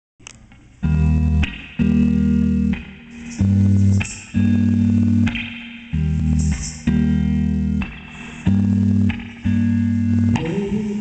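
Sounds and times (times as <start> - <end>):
electric guitar and bass chords: 0.2 - 11.0
cymbal washes: 5.4 - 7.0.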